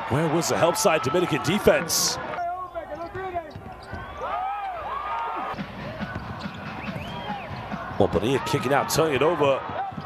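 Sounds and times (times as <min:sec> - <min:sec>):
sneaker squeaks: 0:02.4 - 0:04.8, 0:06.1 - 0:07.6.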